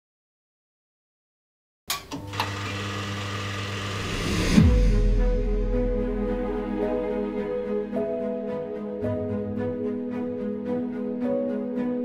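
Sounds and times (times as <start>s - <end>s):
film projector whirring: 1.9s - 4.2s.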